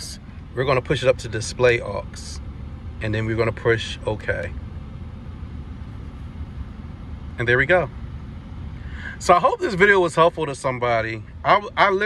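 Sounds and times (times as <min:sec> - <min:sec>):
car engine rumble: 0:00.0 - 0:12.0.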